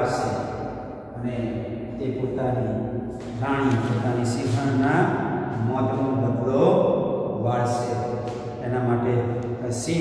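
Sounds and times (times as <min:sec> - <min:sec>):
man reciting in sing-song voice: 0:01.2 - 0:06.8, 0:08.6 - 0:10.0.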